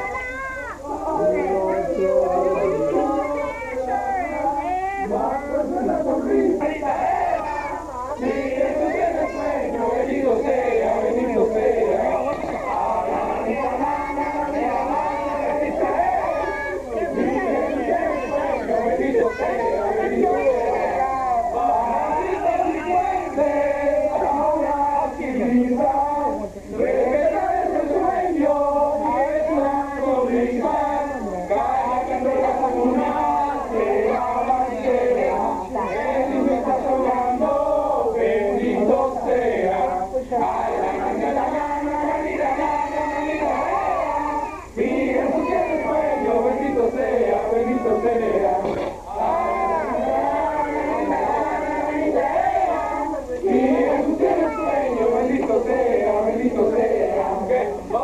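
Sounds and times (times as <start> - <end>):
people talking over one another: 0.0 - 58.0
voices singing together: 0.0 - 58.0.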